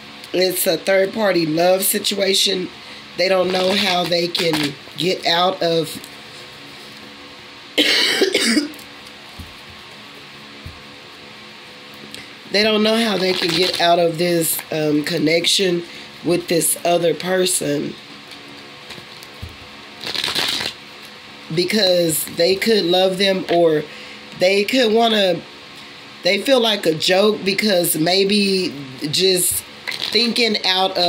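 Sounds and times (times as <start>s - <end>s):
playing cards riffle shuffled: 3.4s - 4.8s, 13.1s - 14.0s, 18.9s - 20.8s, 29.9s - 30.4s
woman coughing: 7.8s - 8.8s.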